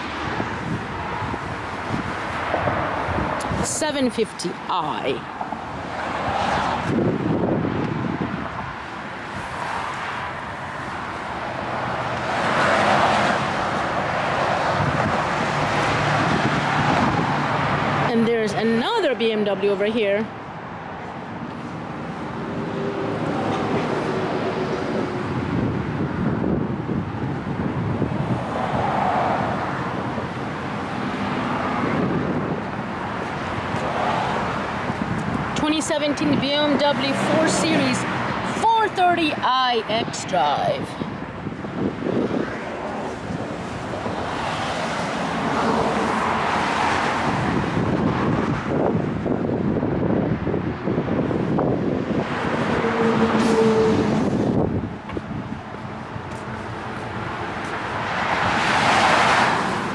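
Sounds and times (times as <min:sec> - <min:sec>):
road traffic rushing: 0:00.0 - 0:59.9
wind on microphone: 0:00.0 - 0:59.9.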